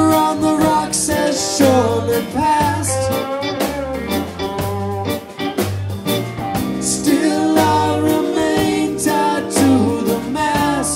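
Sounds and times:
bass guitar: 0.0s - 10.9s
drum kit beat: 0.0s - 10.9s
electric guitar: 0.0s - 10.9s.

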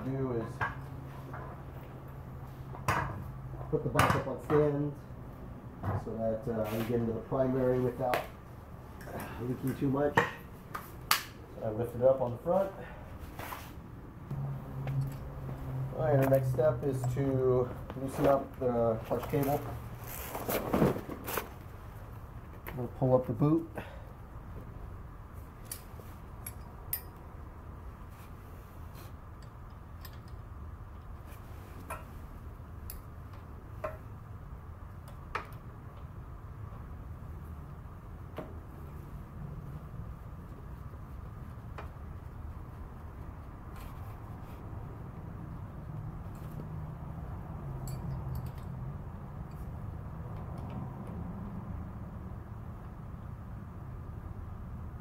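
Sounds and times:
low background hum: 0.0s - 55.0s.

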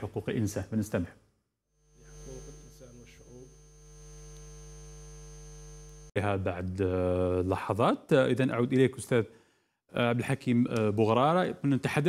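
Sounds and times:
electrical mains hum: 1.8s - 6.1s.

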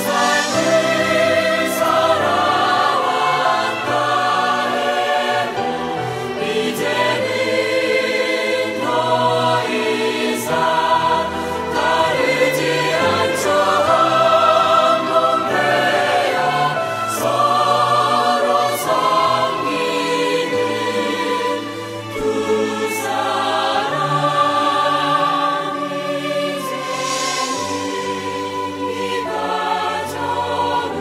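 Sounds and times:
choir-like singing: 0.0s - 31.0s.

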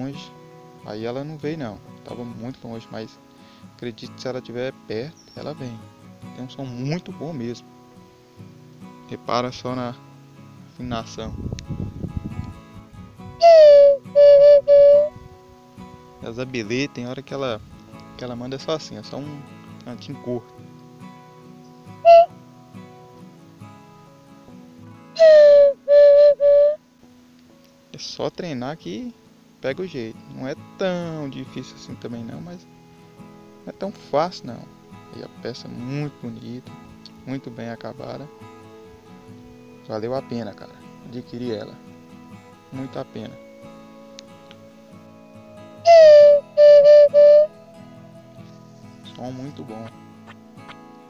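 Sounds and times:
quiet acoustic guitar music: 0.0s - 51.0s
wooden bird-call whistle: 13.4s - 15.1s, 22.0s - 22.3s, 25.2s - 26.8s, 45.8s - 47.6s.

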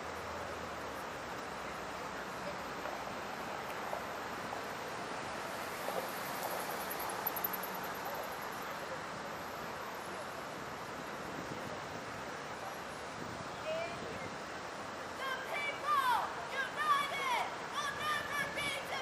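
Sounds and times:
steady city noise: 0.0s - 19.0s.

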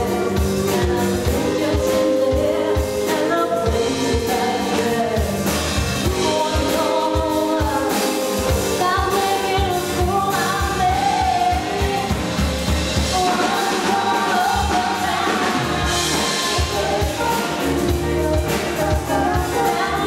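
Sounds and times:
drum kit beat: 0.0s - 20.0s
electric bass: 0.0s - 20.0s
harmony vocals: 0.0s - 20.0s
woman singing lead: 0.0s - 20.0s.

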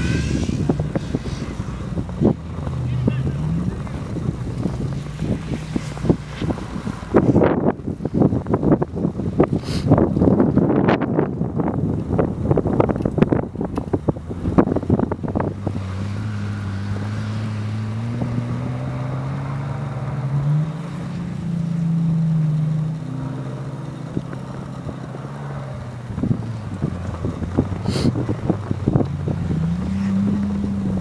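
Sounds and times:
car engine revving: 0.0s - 31.0s
wind buffeting microphone: 0.0s - 31.0s.

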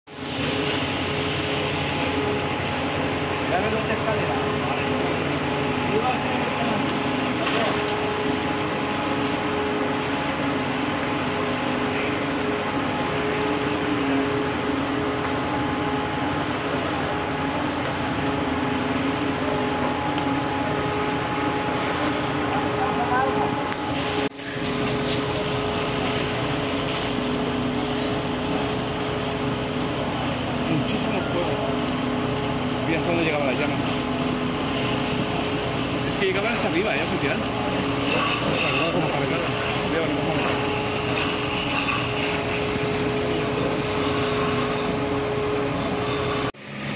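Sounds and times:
fire hose spraying water: 0.1s - 46.5s
pump engine droning: 0.1s - 46.9s.

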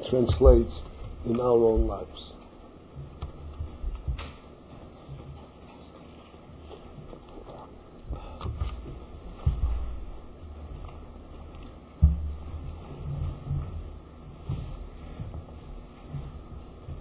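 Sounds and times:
dull thumps: 0.0s - 2.2s, 8.1s - 17.0s
low room rumble: 0.0s - 17.0s.

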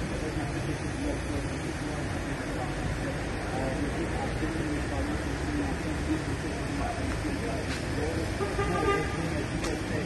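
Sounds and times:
people talking: 0.0s - 10.0s
traffic rumble: 0.0s - 10.0s.

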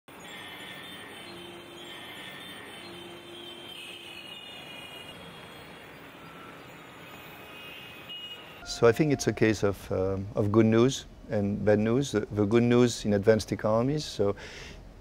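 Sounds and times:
traffic engines and tyres humming: 0.1s - 13.2s
vehicle horn blasts: 1.3s - 5.7s, 7.1s - 9.6s.

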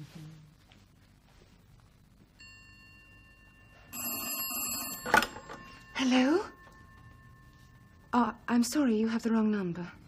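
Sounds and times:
telephone bell ringing: 2.4s - 8.7s.

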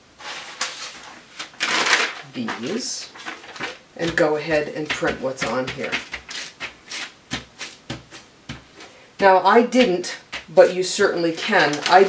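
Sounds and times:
paper rustling: 0.2s - 9.0s, 9.8s - 12.0s.

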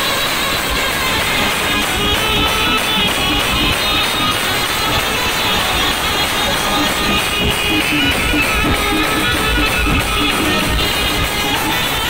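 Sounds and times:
percussion beat: 0.0s - 12.0s
saxophone: 0.0s - 12.0s
street brass band playing: 0.0s - 12.0s
trumpet: 0.0s - 12.0s.

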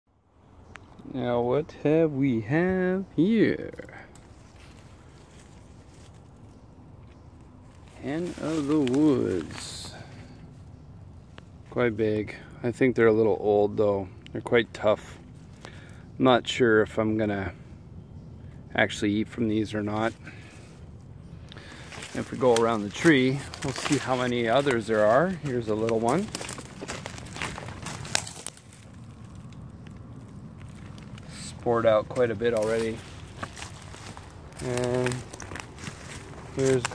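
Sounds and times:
low steady rumble: 0.2s - 36.9s
leaves and twigs crackling underfoot: 2.7s - 12.5s, 14.3s - 16.1s, 19.6s - 36.9s.

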